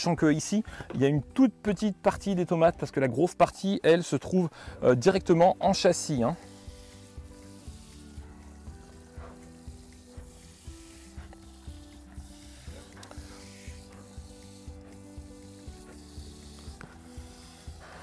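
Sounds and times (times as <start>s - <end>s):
quiet music with held notes: 0.0s - 18.0s
garden hose spraying water: 5.6s - 18.0s.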